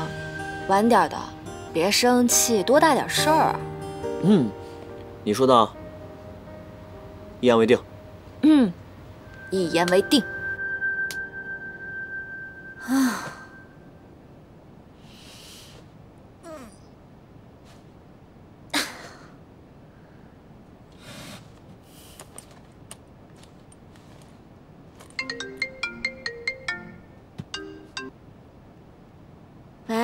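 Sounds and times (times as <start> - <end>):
sustained musical note: 5.7 - 14.5
phone ringtone chiming tune: 9.2 - 13.8, 25.2 - 28.1
woman sighing: 12.8 - 13.7.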